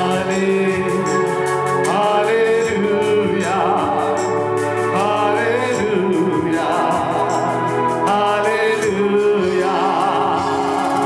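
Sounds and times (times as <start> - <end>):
instrumental accompaniment: 0.0 - 11.0
man singing into a microphone: 0.0 - 11.0.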